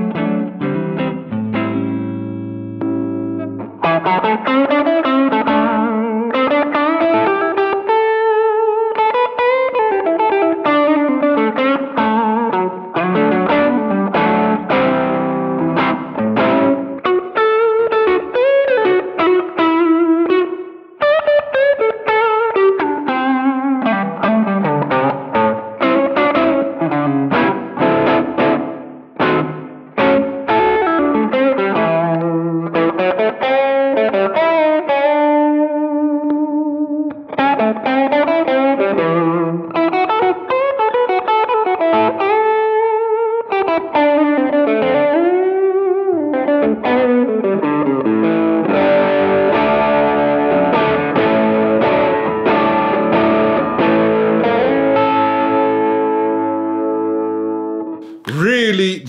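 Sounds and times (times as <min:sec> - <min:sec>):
lightly distorted electric guitar lead: 0:00.0 - 0:59.0.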